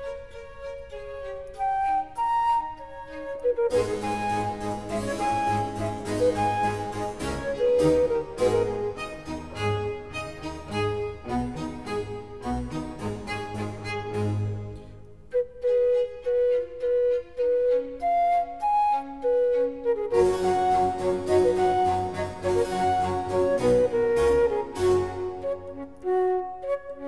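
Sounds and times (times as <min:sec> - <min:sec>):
baroque flute concerto: 0:00.0 - 0:27.0.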